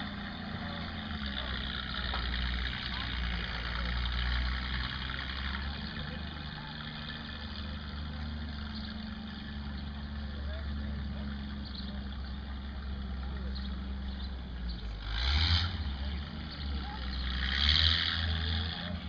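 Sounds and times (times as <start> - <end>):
faint voices: 0.0 - 19.0
vehicle engine idling: 0.0 - 19.0.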